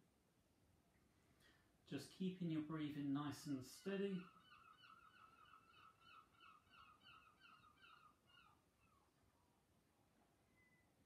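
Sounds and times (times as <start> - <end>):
faint bird calls: 3.7 - 9.6.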